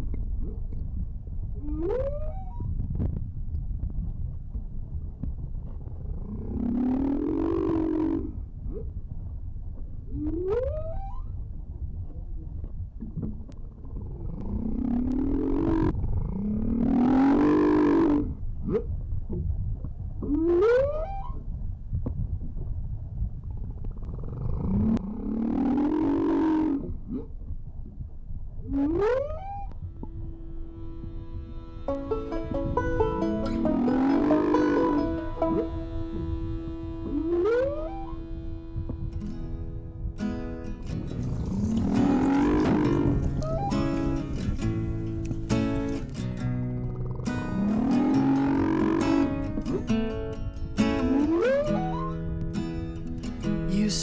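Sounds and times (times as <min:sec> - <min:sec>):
low underwater rumble: 0:00.0 - 0:54.0
humpback whale song: 0:06.2 - 0:08.4, 0:10.1 - 0:11.4, 0:20.3 - 0:21.4, 0:24.8 - 0:27.2, 0:28.7 - 0:46.1, 0:46.7 - 0:50.2, 0:50.8 - 0:52.5.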